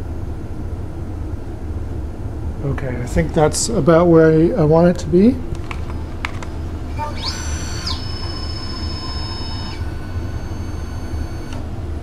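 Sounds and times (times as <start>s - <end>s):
steady low hum: 0.0s - 12.0s
stepper motor whine: 5.9s - 12.0s.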